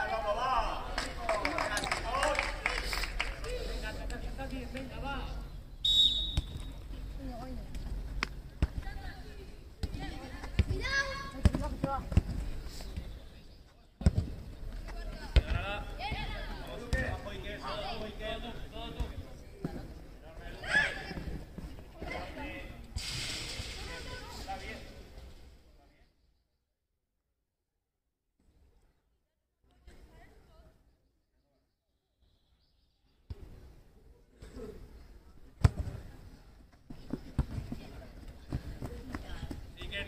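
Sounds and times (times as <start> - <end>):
short high whistle blast: 5.8 - 6.5.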